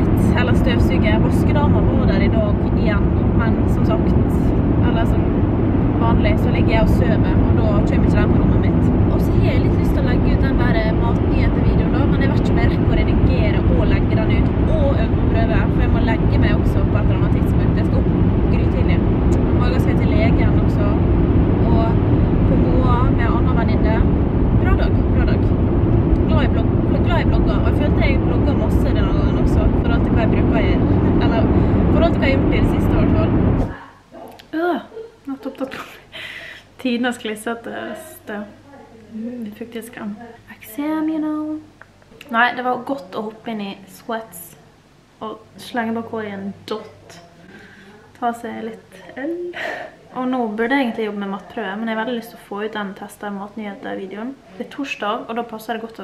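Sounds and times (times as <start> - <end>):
car engine and road rumble: 0.0 - 33.7
woman talking: 0.0 - 56.0.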